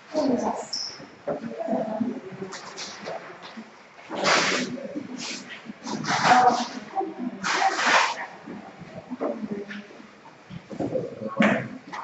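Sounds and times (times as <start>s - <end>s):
people moving: 0.1s - 12.0s.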